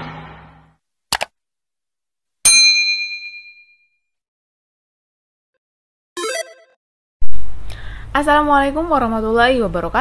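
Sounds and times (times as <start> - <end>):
bell ding: 2.5 - 4.0.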